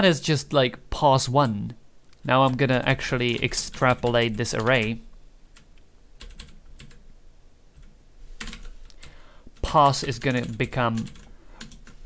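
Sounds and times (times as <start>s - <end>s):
computer keyboard typing: 2.4s - 5.0s, 5.6s - 7.0s, 7.8s - 12.0s.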